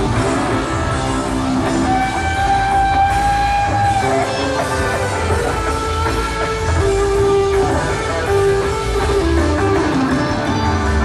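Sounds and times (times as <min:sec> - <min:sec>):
rock band playing live: 0:00.0 - 0:11.0
sustained lead guitar notes: 0:00.0 - 0:11.0.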